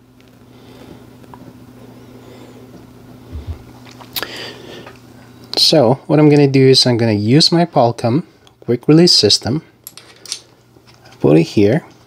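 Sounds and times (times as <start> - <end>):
steady low hum: 0.0 - 12.0
soft low thumps: 3.3 - 3.7.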